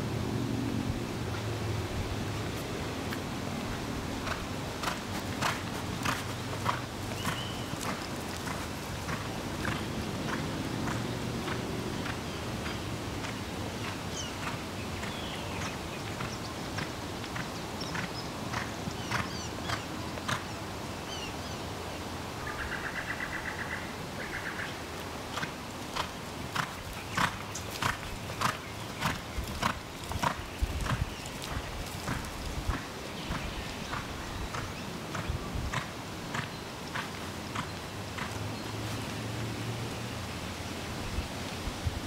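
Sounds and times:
hoofbeats on sand: 2.5 - 20.5, 25.3 - 39.1
small birds chirping: 5.1 - 8.6, 12.0 - 21.6, 26.4 - 39.0.

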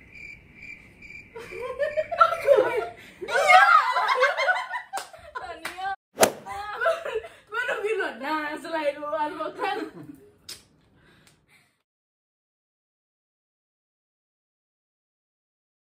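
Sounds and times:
faint insect chirping: 0.0 - 2.9
group laughing and chattering: 1.4 - 5.7, 6.4 - 7.4
sharp hand slaps: 5.0 - 6.5, 10.5 - 10.7.

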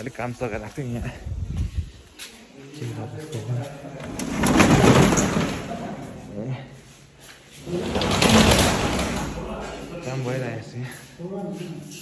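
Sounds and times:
metal roller shutter rattling: 3.9 - 6.3, 7.6 - 10.4.

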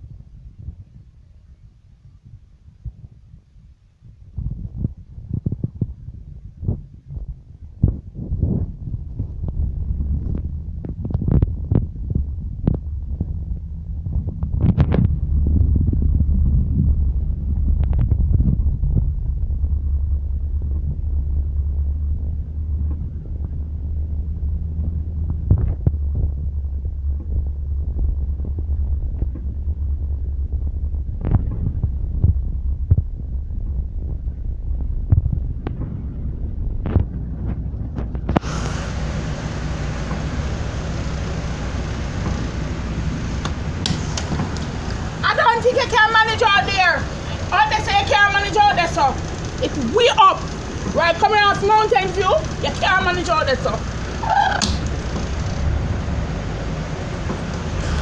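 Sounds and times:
vehicle driving through water rumble: 8.3 - 58.0
loud steady hiss: 38.3 - 58.0.

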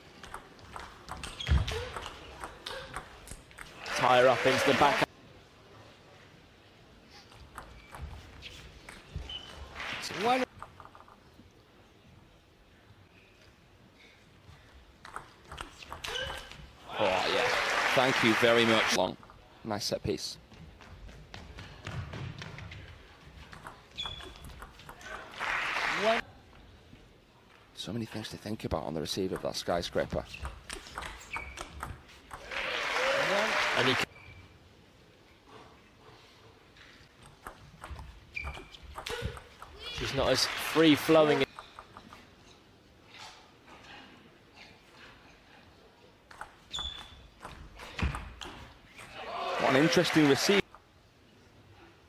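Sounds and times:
crowd applauding and cheering: 3.8 - 5.1, 16.9 - 19.0, 25.2 - 26.2, 32.4 - 34.1
ping pong ball clicking: 30.5 - 32.5.

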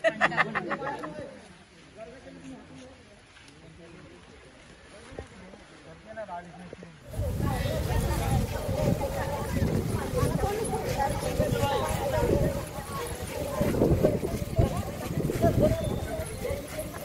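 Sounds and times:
feet thudding and shuffling: 7.1 - 17.0
women's voices together: 7.1 - 17.0.

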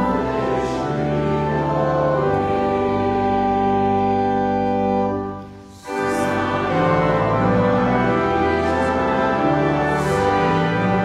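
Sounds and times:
organ chords: 0.0 - 11.0
voices singing a hymn: 0.0 - 11.0.

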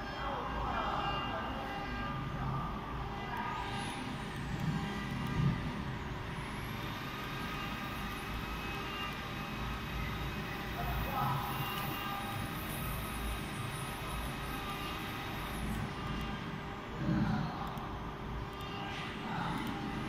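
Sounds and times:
faint high whine: 0.0 - 20.0
steady machine hum: 0.0 - 20.0.

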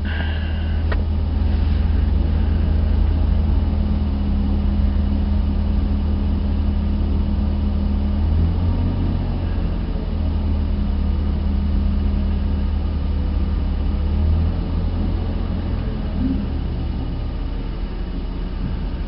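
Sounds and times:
low engine drone: 0.0 - 19.0.

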